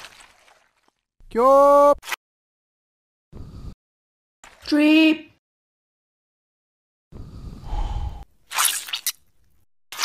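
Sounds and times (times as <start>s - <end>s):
cartoon wet squelch: 8.5s - 9.2s.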